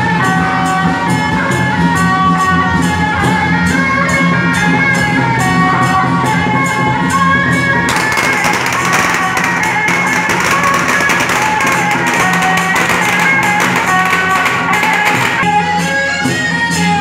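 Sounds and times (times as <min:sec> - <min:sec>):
festive procession music: 0:00.0 - 0:17.0
rapid clashing percussion: 0:00.0 - 0:17.0.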